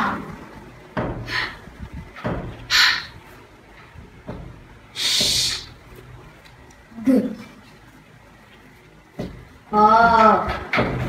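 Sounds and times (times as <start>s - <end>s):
person hissing shh: 5.0s - 5.7s.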